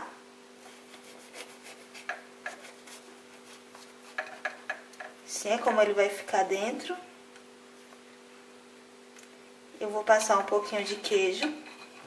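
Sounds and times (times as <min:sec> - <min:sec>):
faint steady hum: 0:00.0 - 0:12.0
knife sawing through bread roll: 0:00.8 - 0:04.2.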